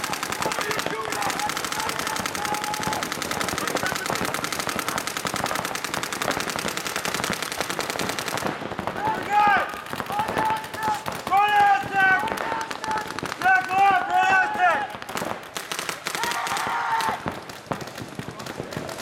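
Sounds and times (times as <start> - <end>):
voices shouting: 0.0 - 6.4, 8.7 - 17.5
rapid paintball marker fire: 0.0 - 19.0.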